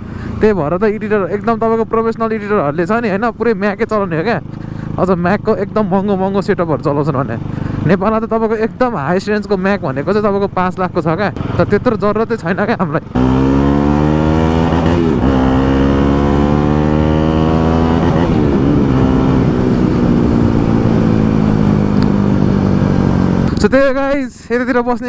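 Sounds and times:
motorcycle engine running: 0:00.0 - 0:24.2.

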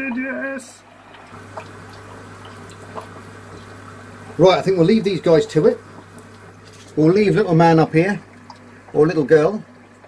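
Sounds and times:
aquarium water bubbling: 0:00.0 - 0:10.0
steady low hum: 0:00.0 - 0:10.0.

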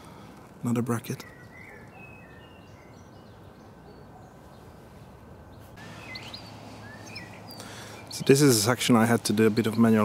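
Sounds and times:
faint bird chirps: 0:01.1 - 0:04.8, 0:05.5 - 0:08.4.

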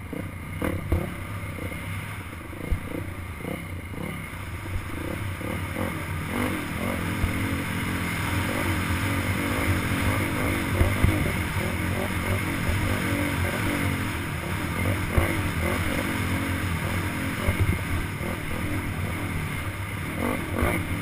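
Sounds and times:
dirt bike engine: 0:00.0 - 0:21.0
bike knocking on bumps: 0:00.9 - 0:01.1.

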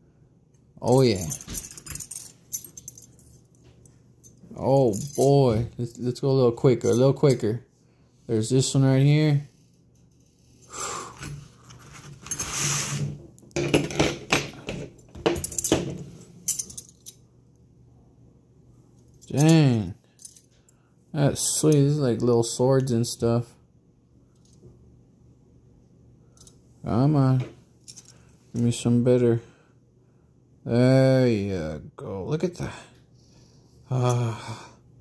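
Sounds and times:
metal tools clinking: 0:00.8 - 0:03.6, 0:04.2 - 0:07.6, 0:13.6 - 0:17.2, 0:19.1 - 0:20.5.

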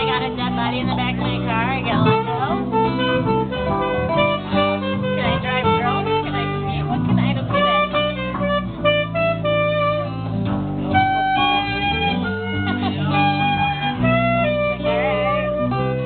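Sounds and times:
acoustic and electric guitars: 0:00.0 - 0:16.0
wavering held melody notes: 0:00.0 - 0:16.0.

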